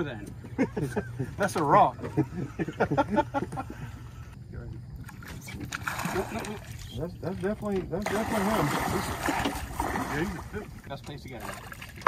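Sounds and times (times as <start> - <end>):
men laughing: 0.1 - 4.4
water splashing: 4.9 - 12.0.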